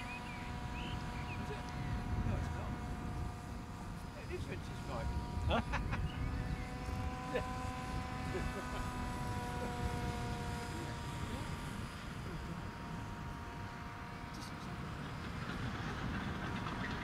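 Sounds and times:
model aircraft motor humming: 0:00.0 - 0:17.0.

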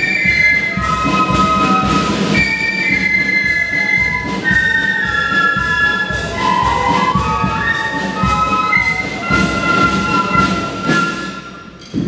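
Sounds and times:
flute band playing: 0:00.0 - 0:12.0.

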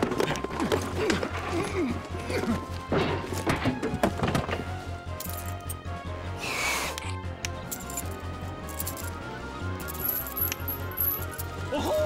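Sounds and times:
cartoon background music: 0:00.0 - 0:12.0
keys jingling: 0:05.2 - 0:05.8, 0:07.7 - 0:09.2, 0:09.8 - 0:11.6.

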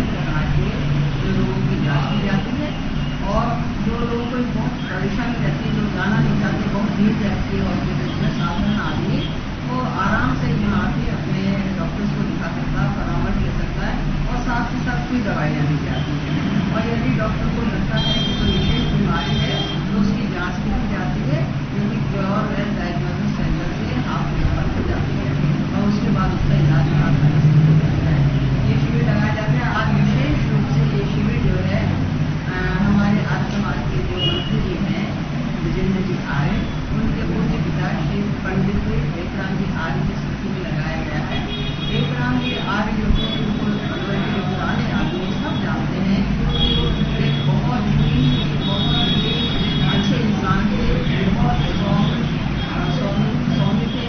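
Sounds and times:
steady low hum: 0:00.0 - 0:54.0
woman talking: 0:00.0 - 0:54.0.

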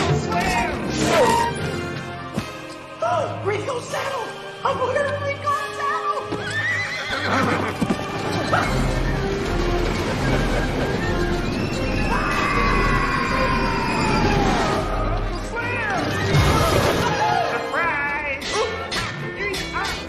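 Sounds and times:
orchestral chase music: 0:00.0 - 0:20.0
cartoon horse whinnying: 0:06.4 - 0:07.8.

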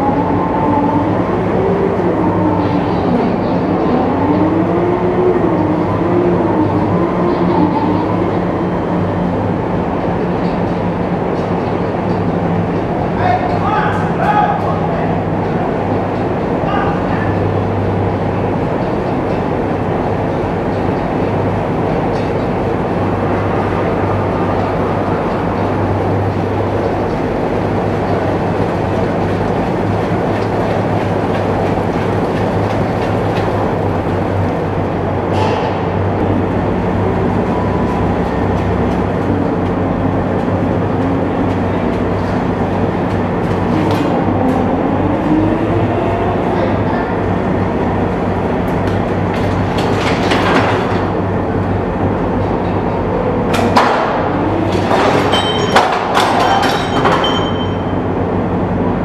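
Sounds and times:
diesel engine running: 0:14.8 - 0:55.2
metallic clanks from tracks: 0:18.4 - 0:36.5, 0:48.6 - 0:58.1.

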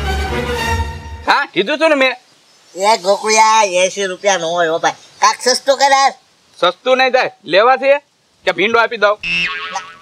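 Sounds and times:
ringing pitched comic tone: 0:09.2 - 0:10.0.

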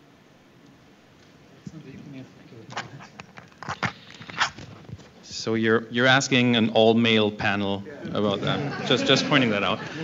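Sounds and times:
people laughing breathily: 0:08.4 - 0:10.0.

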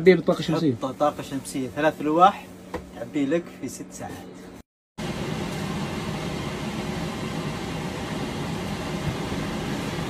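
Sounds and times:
low mechanical drone: 0:05.0 - 0:10.0.

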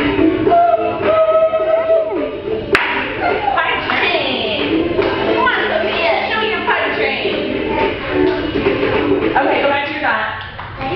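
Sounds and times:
hand clap: 0:02.7 - 0:03.2.

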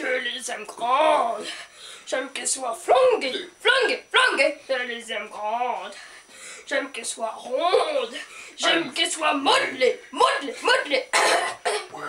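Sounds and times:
voices chanting unaccompanied: 0:00.0 - 0:11.3
breathy noise: 0:05.9 - 0:06.7.

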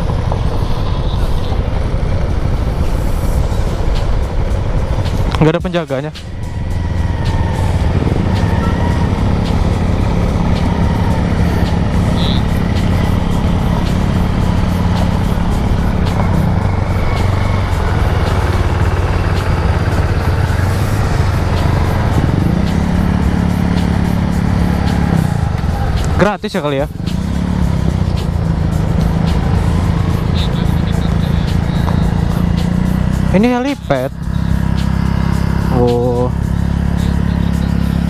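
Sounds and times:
scooter engine running: 0:00.0 - 0:38.0
wind rushing over microphone: 0:06.2 - 0:23.8.

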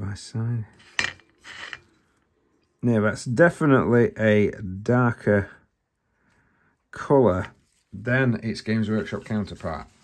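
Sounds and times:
metal palette scraping across mat: 0:00.7 - 0:02.2.

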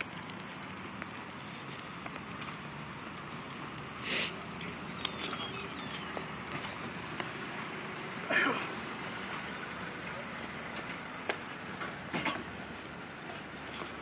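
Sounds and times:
outdoor background noise: 0:00.0 - 0:14.0.

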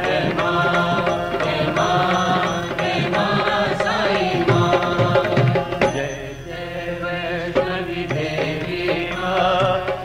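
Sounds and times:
devotional song: 0:00.0 - 0:10.0.

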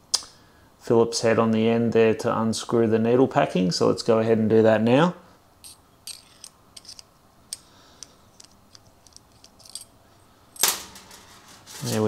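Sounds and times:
small metal clicks: 0:05.6 - 0:10.0.

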